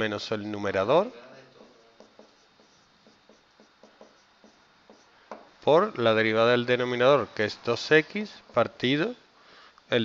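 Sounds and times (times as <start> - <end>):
marker scratching on whiteboard: 1.5 - 5.4.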